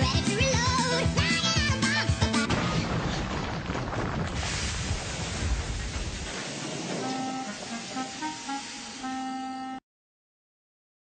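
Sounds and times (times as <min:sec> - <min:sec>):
horn-like tone toots: 0:07.0 - 0:09.8.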